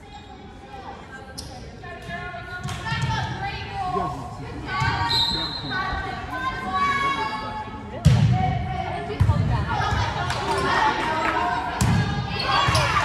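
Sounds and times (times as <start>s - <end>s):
voices in gymnasium: 0.0s - 13.0s.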